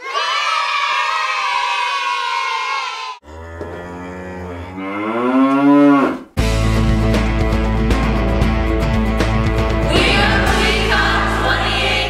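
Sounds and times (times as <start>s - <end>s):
cow mooing: 3.2s - 6.4s
music with steady beat: 6.4s - 12.0s.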